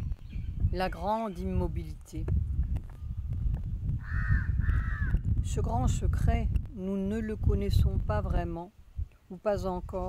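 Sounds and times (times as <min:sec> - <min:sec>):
steady low rumble: 0:01.6 - 0:10.0.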